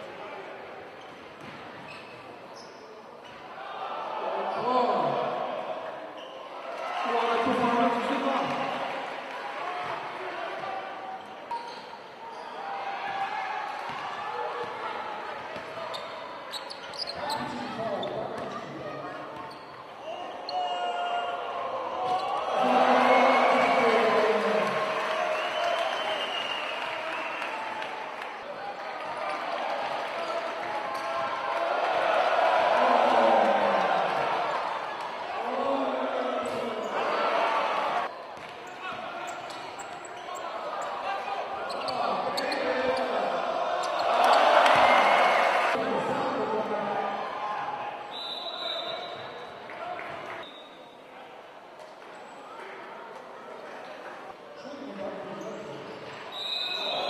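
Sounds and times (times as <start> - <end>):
voices echoing in a hall: 0.0 - 57.0.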